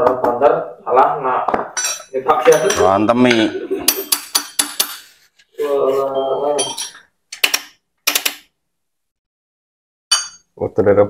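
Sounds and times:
metal tools clinking: 0:01.8 - 0:05.1, 0:06.5 - 0:07.1.

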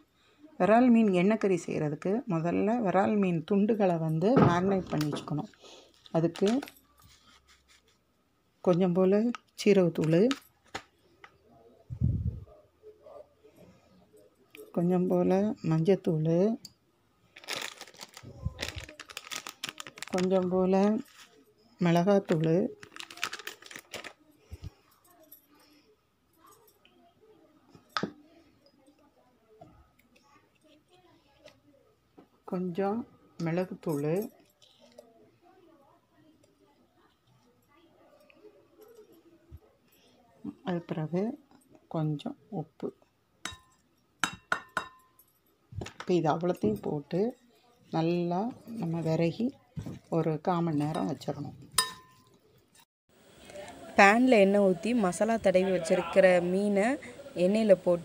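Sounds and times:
clink on ceramic plate: 0:43.4 - 0:45.2, 0:51.8 - 0:52.3.

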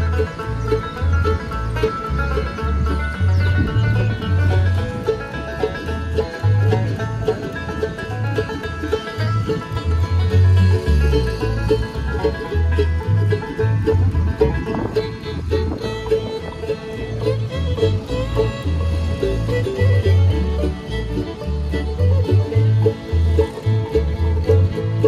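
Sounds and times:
banjo: 0:00.0 - 0:25.0
bass notes: 0:00.0 - 0:25.0
fiddle: 0:00.0 - 0:25.0
guitars: 0:00.0 - 0:25.0
mandolin: 0:00.0 - 0:25.0.

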